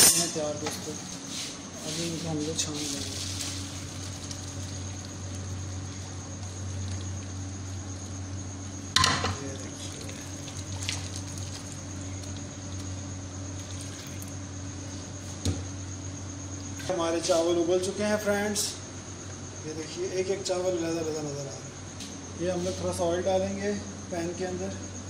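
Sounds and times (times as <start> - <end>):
water pouring through strainer: 3.1 - 7.2, 9.5 - 12.8, 13.6 - 14.3.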